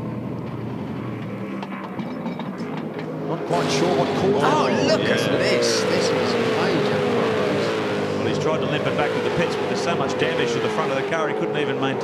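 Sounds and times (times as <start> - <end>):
low steady engine hum: 0.0 - 12.0
clicks and clanks of wheel work: 0.5 - 3.3.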